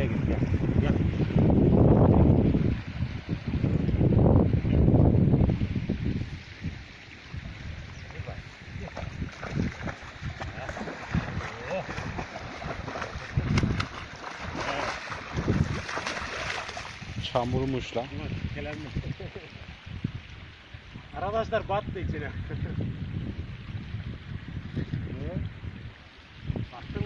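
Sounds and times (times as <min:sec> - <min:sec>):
wind buffeting microphone: 0:00.0 - 0:27.0
dog splashing through creek: 0:07.4 - 0:18.0.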